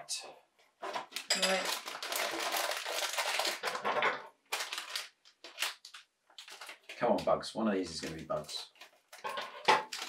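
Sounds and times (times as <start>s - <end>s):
plastic bags crinkling and tearing: 0.8s - 7.0s, 7.9s - 10.0s.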